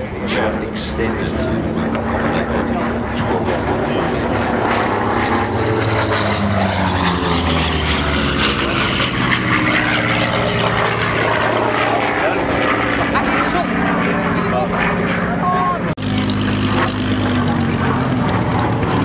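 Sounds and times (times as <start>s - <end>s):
propeller plane flying by: 0.0s - 19.0s.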